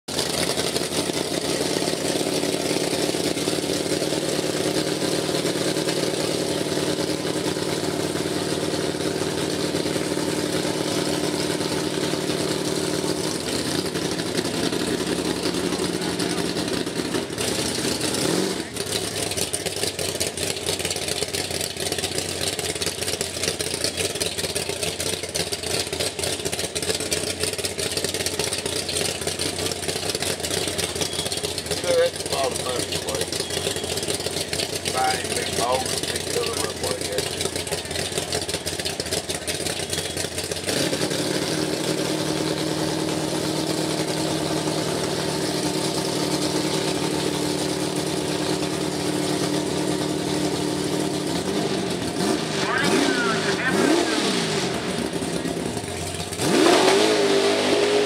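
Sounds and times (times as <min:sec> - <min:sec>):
buggy engine idling: 0:00.1 - 0:58.0.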